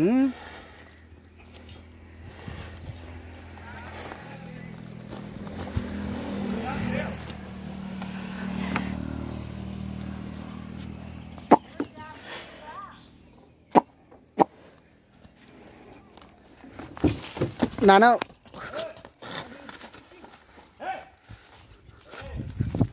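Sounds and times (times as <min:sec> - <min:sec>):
vehicle engine passing: 0:00.3 - 0:16.7.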